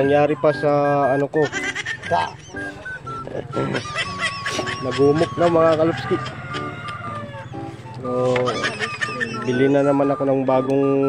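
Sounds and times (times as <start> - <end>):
background music: 0.0 - 11.0
bird calling: 0.0 - 11.0.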